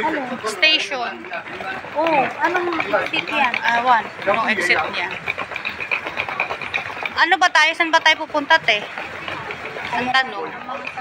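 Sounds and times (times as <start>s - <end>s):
traffic hum: 0.0s - 11.0s
fast high-pitched ticking: 0.5s - 11.0s.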